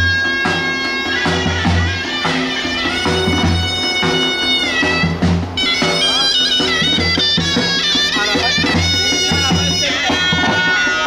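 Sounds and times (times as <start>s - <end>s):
low drum beat: 0.0s - 11.0s
shrill wind instrument: 0.0s - 11.0s.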